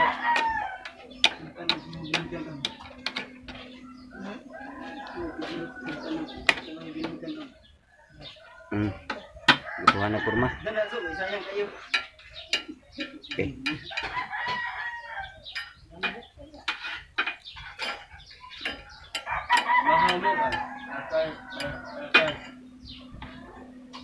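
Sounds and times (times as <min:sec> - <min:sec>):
rooster crowing: 0:00.0 - 0:01.0, 0:03.8 - 0:06.7, 0:09.5 - 0:11.7, 0:13.9 - 0:15.4, 0:19.0 - 0:24.0
chickens clucking: 0:00.0 - 0:24.0.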